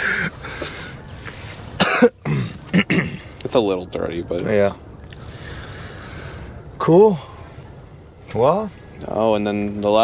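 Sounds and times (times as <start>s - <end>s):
man coughing: 1.8s - 3.2s.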